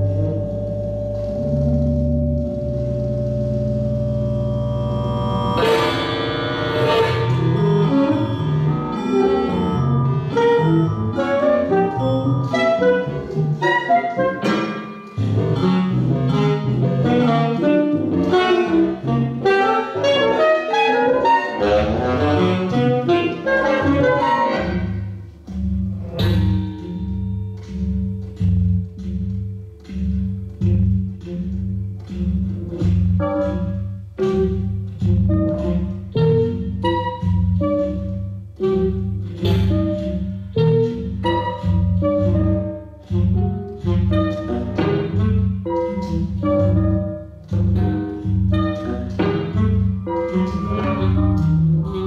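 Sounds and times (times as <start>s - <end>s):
processed tenor saxophone: 0.0s - 14.6s, 15.2s - 25.0s, 32.8s - 52.0s.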